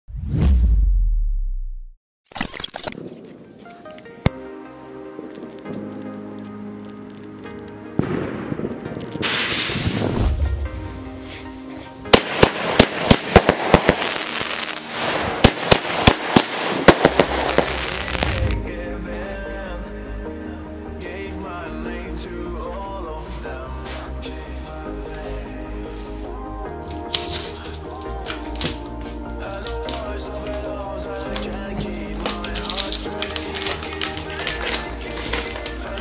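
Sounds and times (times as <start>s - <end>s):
deep boom: 0.1s - 2.0s, 9.8s - 10.9s
whoosh: 0.1s - 2.0s, 9.2s - 11.5s
firework sharp bangs: 8.0s - 11.4s, 12.1s - 18.6s
firework crackling hiss: 8.0s - 18.6s, 27.0s - 30.7s, 32.1s - 36.0s.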